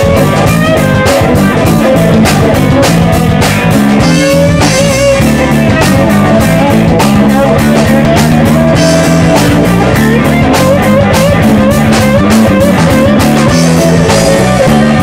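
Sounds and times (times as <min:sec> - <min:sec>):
bass guitar: 0:00.0 - 0:15.0
drum beat: 0:00.0 - 0:15.0
electric guitar lead: 0:00.0 - 0:15.0.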